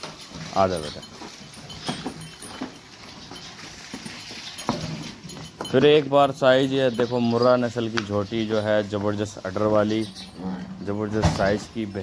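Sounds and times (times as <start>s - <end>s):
low indistinct sounds of buffalo: 10.0s - 11.4s.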